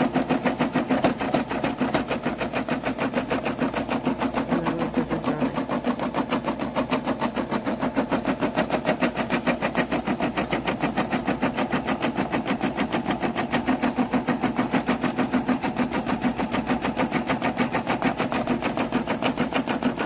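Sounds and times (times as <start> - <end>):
embroidery machine stitching: 0.0 - 20.0.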